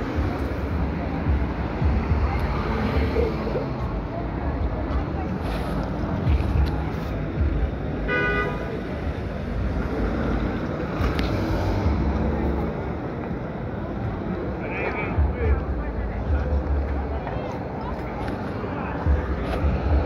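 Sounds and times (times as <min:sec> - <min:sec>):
street traffic rumble: 0:00.0 - 0:20.0
car horn toot: 0:08.1 - 0:08.6.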